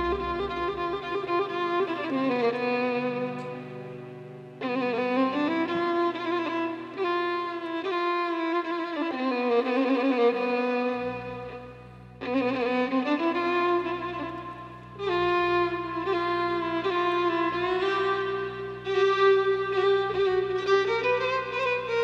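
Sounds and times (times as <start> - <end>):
orchestra low held note: 0.0 - 3.7
solo violin melody: 0.0 - 22.0.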